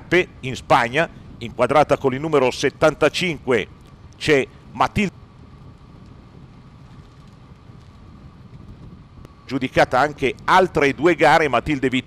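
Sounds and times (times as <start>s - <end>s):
faint steady hum: 0.0s - 12.0s
vehicle road noise: 0.0s - 12.0s
wind rush: 0.0s - 12.0s.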